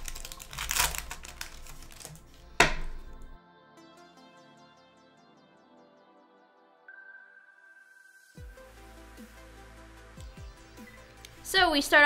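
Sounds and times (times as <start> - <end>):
foil wrapper crackling and crinkling: 0.0 - 3.4
wrapper ripping: 0.0 - 3.4
soft background music: 0.0 - 12.0.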